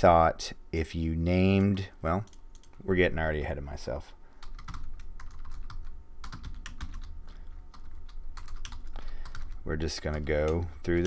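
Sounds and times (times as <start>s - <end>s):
steady low hum: 0.0s - 11.0s
typing on computer keyboard: 4.4s - 10.6s.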